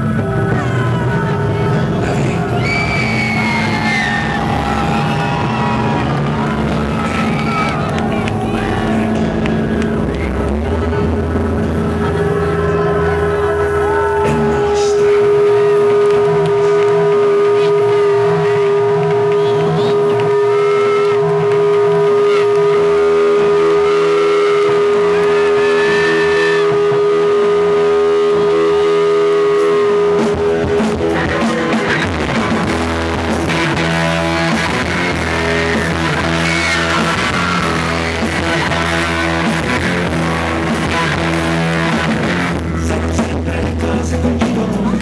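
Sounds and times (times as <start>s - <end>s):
held synth note: 0.0s - 42.6s
electric guitar: 0.0s - 45.0s
electronic backing: 0.0s - 45.0s
pulsing low bass line: 0.0s - 45.0s.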